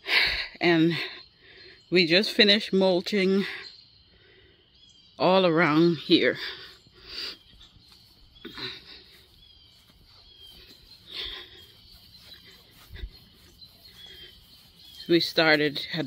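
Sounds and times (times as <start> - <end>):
faint bird chirps: 1.0 - 16.0.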